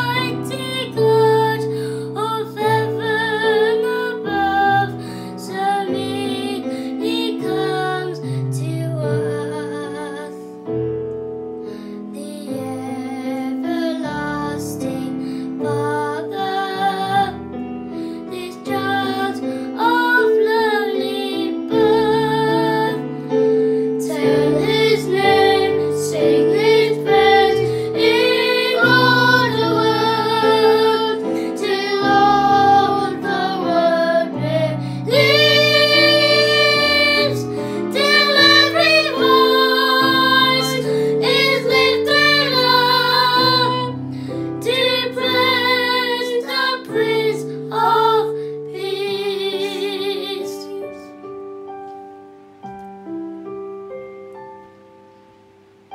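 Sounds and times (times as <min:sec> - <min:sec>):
boys singing a hymn: 0:00.0 - 0:10.2, 0:13.0 - 0:17.4, 0:18.3 - 0:50.8
instrumental accompaniment: 0:21.4 - 0:50.2, 0:50.9 - 0:55.9.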